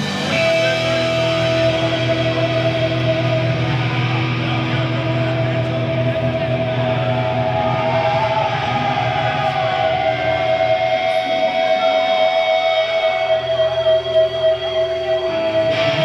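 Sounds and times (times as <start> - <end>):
electric guitars sustained notes: 0.0 - 16.0
heavy metal band playing live: 0.0 - 16.0.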